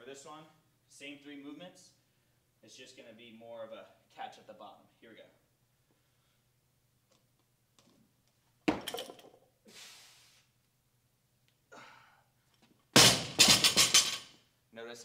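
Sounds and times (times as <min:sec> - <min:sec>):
barbell thudding on floor: 0:08.7 - 0:09.3, 0:13.0 - 0:14.2.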